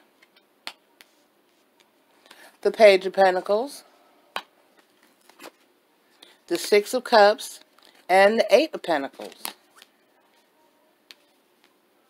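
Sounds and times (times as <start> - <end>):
cards being handled: 4.4 - 5.7, 7.6 - 8.1, 9.1 - 10.4.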